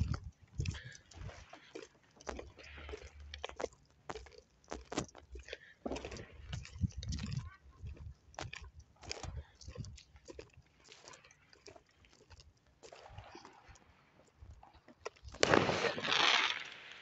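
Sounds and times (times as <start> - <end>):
distant fireworks popping and crackling: 15.2 - 17.0.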